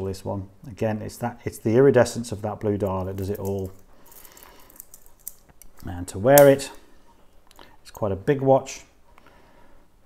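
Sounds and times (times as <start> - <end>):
metal watch bracelet clinking: 3.0 - 6.6.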